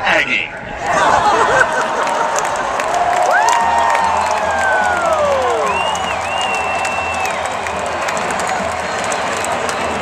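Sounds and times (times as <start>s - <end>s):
crowd cheering and applauding: 0.8s - 10.0s.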